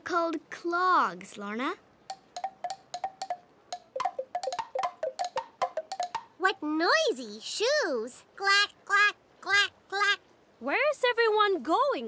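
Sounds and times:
wooden clogs clacking: 2.1s - 6.4s.

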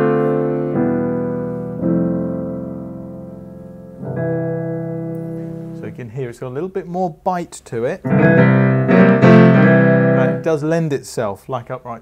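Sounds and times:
piano sustained chords: 0.0s - 6.1s, 8.1s - 10.6s.

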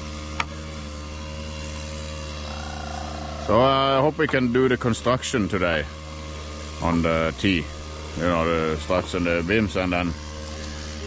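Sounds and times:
lawn mower engine running: 0.0s - 11.0s.

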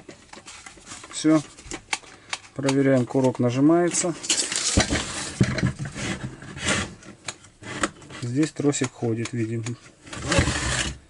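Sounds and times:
plastic handle rubbing and rustling: 2.7s - 11.0s.

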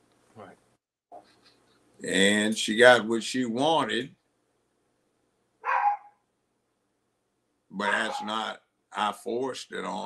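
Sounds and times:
dog bark: 5.6s - 6.2s, 7.8s - 8.4s.

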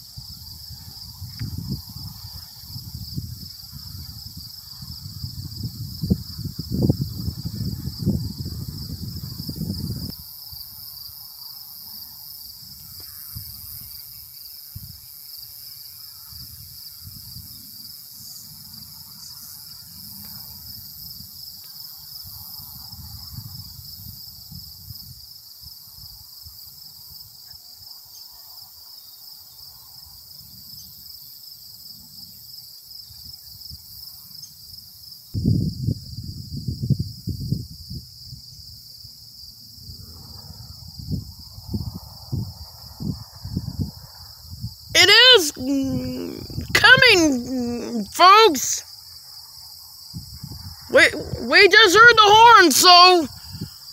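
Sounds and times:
wind rumbling on microphone: 0.0s - 10.2s, 35.4s - 38.6s, 39.8s - 44.9s, 50.1s - 51.4s
insects trilling: 0.0s - 35.3s, 37.8s - 53.9s.

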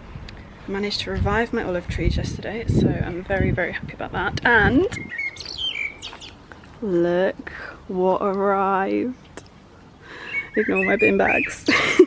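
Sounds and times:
birds chirping: 4.4s - 12.0s.

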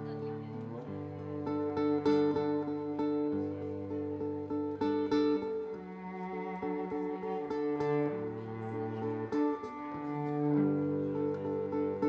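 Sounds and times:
cello bowing low notes: 0.0s - 12.0s
fingerpicked acoustic guitar: 0.0s - 12.0s.

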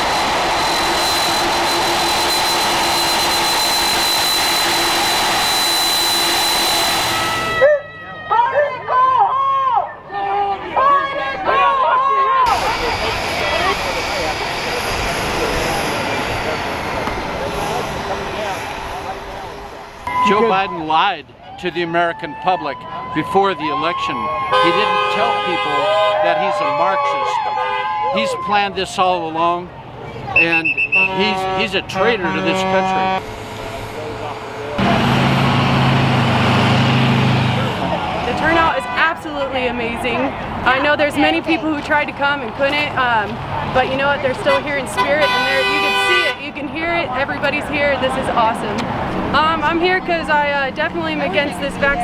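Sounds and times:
jet turbine roar with whine: 0.0s - 7.6s, 12.5s - 20.7s
heavy vehicle engine hum: 0.0s - 7.7s, 12.5s - 21.1s, 29.7s - 52.0s
road noise: 0.0s - 52.0s.

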